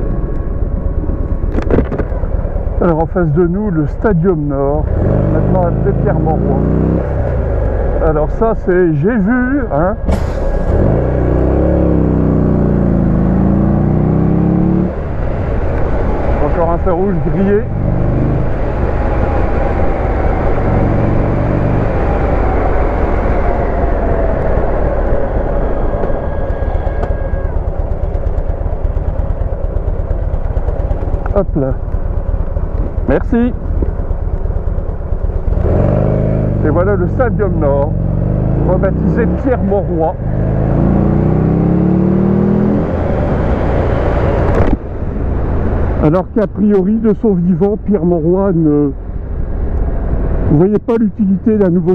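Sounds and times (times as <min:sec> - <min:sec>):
motorcycle engine running: 0:00.0 - 0:10.1, 0:11.0 - 0:46.1
wind rush on microphone: 0:14.9 - 0:34.0, 0:42.7 - 0:46.0.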